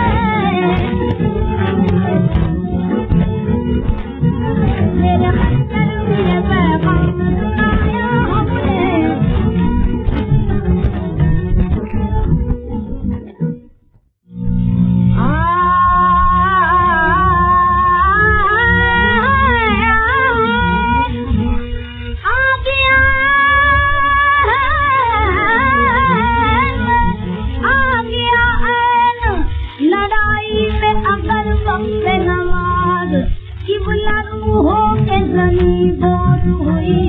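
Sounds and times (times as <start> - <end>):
steady drone: 0.0 - 13.6
indian classical music record: 0.0 - 37.0.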